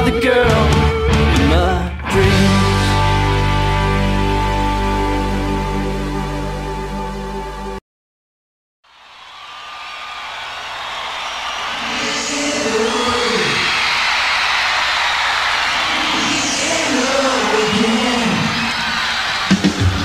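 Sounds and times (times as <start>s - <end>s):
audience cheering and whistling: 8.9s - 20.0s.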